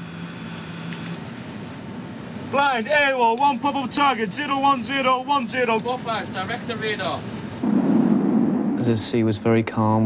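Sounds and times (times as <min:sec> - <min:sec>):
machinery and ventilation noise: 0:00.0 - 0:07.7, 0:08.7 - 0:10.0
low hum: 0:07.3 - 0:09.5.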